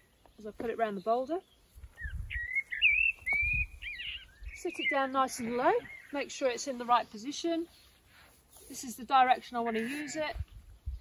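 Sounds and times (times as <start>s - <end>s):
songbird warbling: 0.0s - 6.4s.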